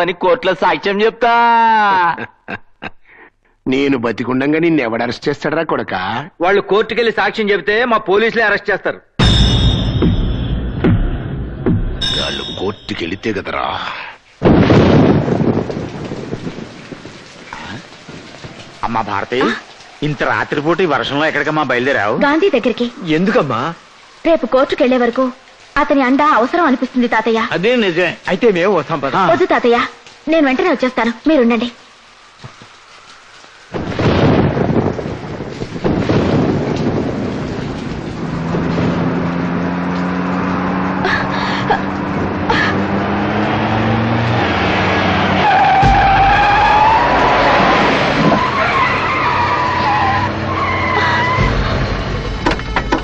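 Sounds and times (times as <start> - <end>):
heavy rain falling: 12.0 - 53.0
thunder rumbling: 14.4 - 25.1, 33.5 - 53.0.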